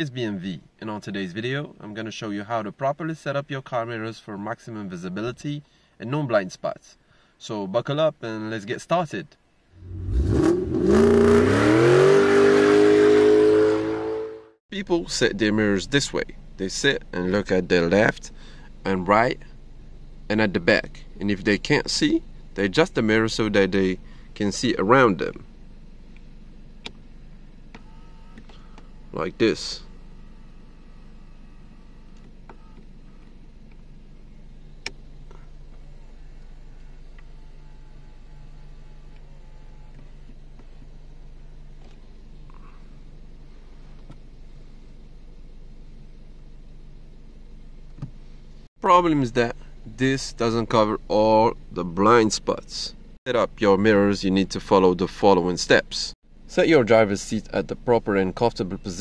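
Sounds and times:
car engine revving: 9.7s - 14.6s
faint low car cabin hum: 14.8s - 59.0s.

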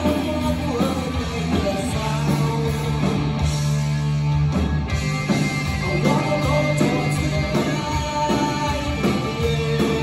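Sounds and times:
live punk rock band playing: 0.0s - 10.0s.

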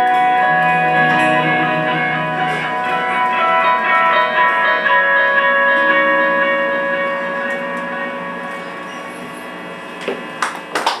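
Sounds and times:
band chord ringing out: 0.0s - 10.4s
audience clapping and cheering: 10.4s - 11.0s.

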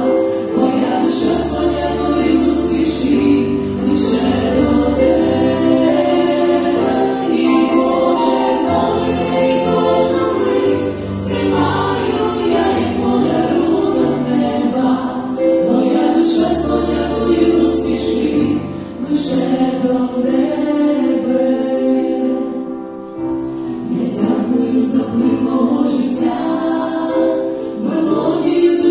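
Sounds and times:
women singing in harmony: 0.0s - 23.0s, 23.7s - 28.9s
piano accompaniment: 0.0s - 28.9s.

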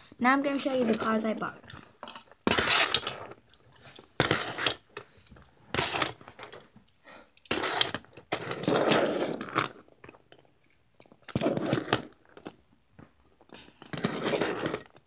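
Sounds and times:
toy cars clicking and scraping: 0.4s - 6.7s, 7.4s - 15.0s.

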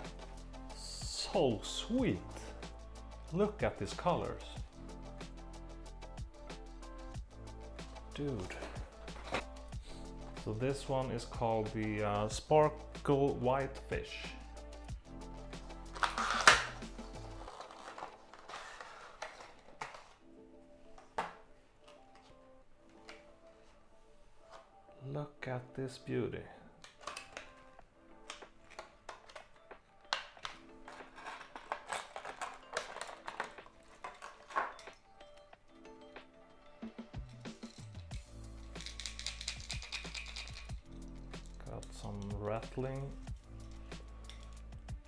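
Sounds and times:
background music: 0.0s - 45.0s
plastic packaging crackle: 16.0s - 20.2s, 28.4s - 35.0s
packaging rustles and clicks: 16.0s - 20.3s, 26.8s - 35.5s
rattle balls clicking in lure: 37.2s - 42.4s.

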